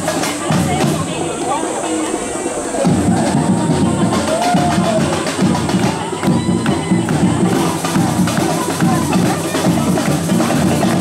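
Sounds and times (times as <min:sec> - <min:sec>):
crowd cheering and shouting: 0:00.0 - 0:11.0
samba percussion music: 0:00.0 - 0:11.0.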